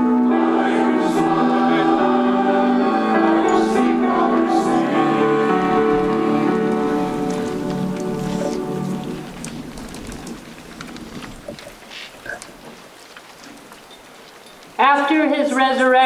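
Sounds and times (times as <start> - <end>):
group singing a hymn: 0.0 - 9.5
faint crackling and rustling: 3.3 - 16.0.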